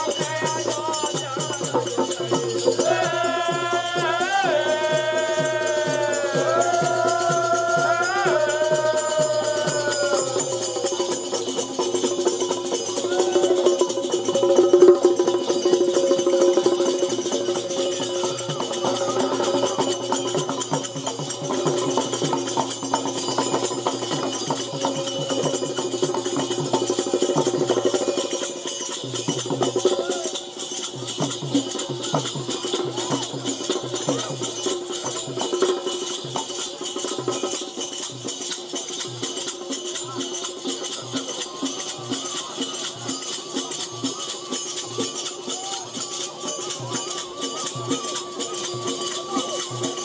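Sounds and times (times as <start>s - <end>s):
folk music through loudspeakers: 0.0s - 10.4s
jingling rattling percussion: 0.0s - 50.0s
steady drum beat: 0.0s - 50.0s.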